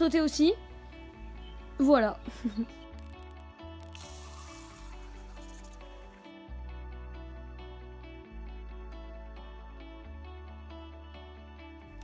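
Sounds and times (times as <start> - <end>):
gentle background music: 0.0 - 12.0
water spraying into plastic cup: 2.9 - 6.2.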